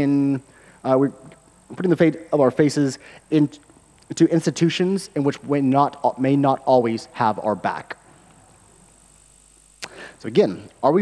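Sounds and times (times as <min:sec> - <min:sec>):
low steady hiss: 0:00.0 - 0:11.0
mouth click: 0:09.8 - 0:10.0.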